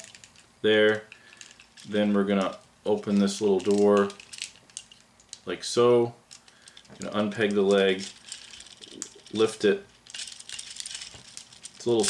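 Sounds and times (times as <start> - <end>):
plastic action figure rattling: 0.0 - 5.5, 6.3 - 12.0.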